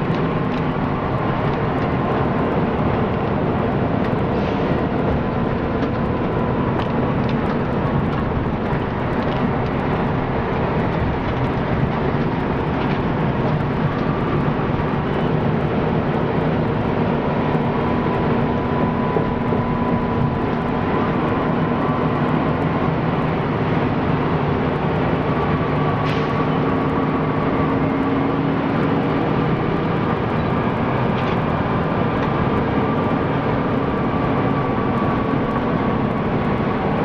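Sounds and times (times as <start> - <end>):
bus engine and road noise: 0.0 - 37.0.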